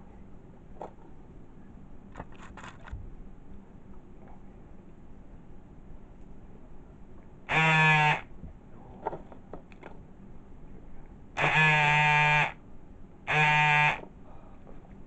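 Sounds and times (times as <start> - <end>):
loud buzzing tone: 7.5 - 8.3, 11.4 - 12.6, 13.2 - 14.1.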